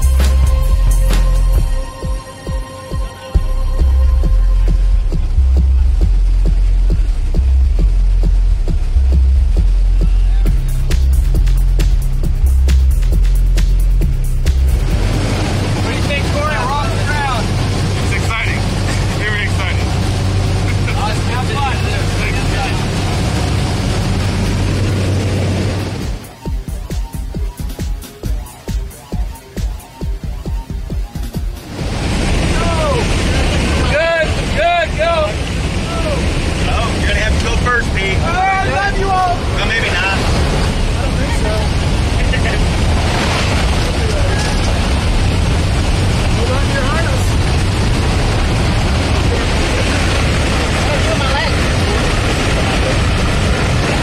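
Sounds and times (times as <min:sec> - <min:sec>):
propeller plane engine droning: 0:13.9 - 0:27.1, 0:30.0 - 0:54.0
wind rushing: 0:31.4 - 0:54.0
raised voices: 0:32.4 - 0:42.9.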